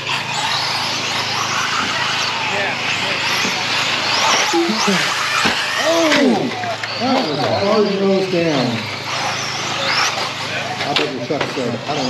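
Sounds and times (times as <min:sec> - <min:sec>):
toy car motors whining: 0:00.0 - 0:12.0
voices: 0:00.0 - 0:12.0.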